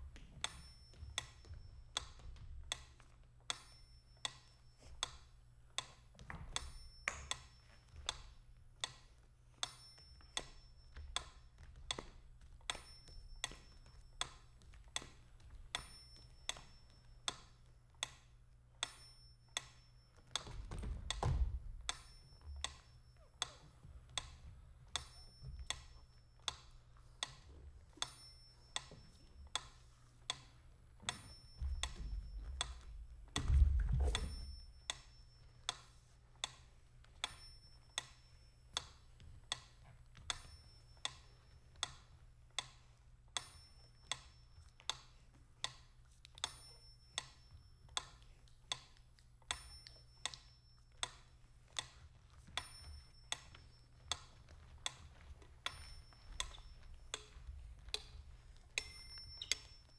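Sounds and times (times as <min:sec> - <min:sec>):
clock-like ticking: 0:06.6 - 0:42.0, 0:49.5 - 0:59.9
faint high pings: 0:46.4 - 0:47.9, 0:58.8 - 0:59.9.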